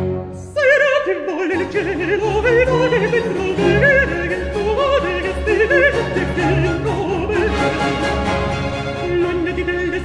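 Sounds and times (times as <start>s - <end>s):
baroque orchestra: 0.0s - 10.0s
countertenor singing aria: 0.0s - 10.0s.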